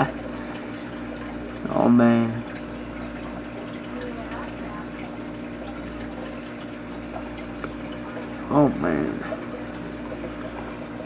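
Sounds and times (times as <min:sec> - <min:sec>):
aquarium pump hum: 0:00.0 - 0:11.0
moving water: 0:00.0 - 0:11.0.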